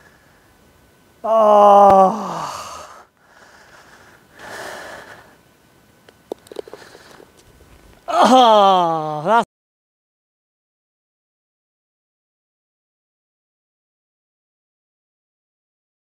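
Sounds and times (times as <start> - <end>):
man groaning: 1.2 - 3.0, 8.1 - 9.5
man sighing heavily: 1.2 - 3.6, 8.1 - 9.4.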